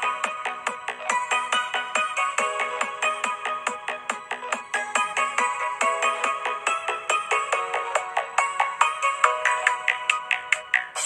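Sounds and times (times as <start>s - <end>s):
dance music with fast beat: 0.0s - 11.0s.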